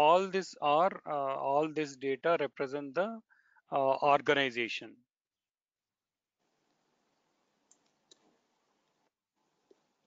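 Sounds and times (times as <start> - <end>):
computer mouse clicks: 7.7 - 9.0.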